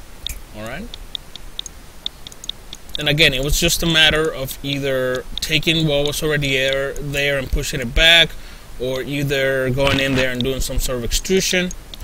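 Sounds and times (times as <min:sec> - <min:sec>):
computer mouse clicking: 0:00.3 - 0:03.0, 0:09.8 - 0:10.6.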